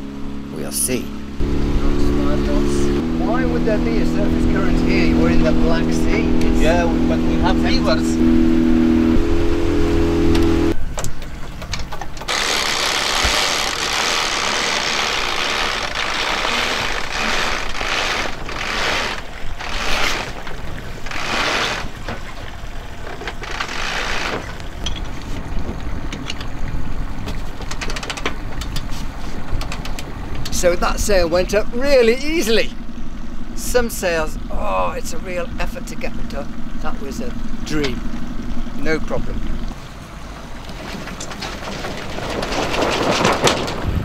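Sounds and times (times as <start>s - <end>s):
halyard running: 0.0s - 44.0s
low motor hum: 0.0s - 44.0s
sail cloth rustling and flapping: 12.4s - 26.0s, 40.5s - 44.0s.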